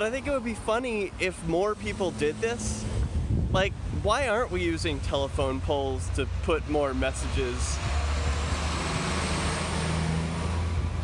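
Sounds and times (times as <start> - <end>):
road noise: 0.0 - 11.0
truck engine rumbling: 0.0 - 11.0.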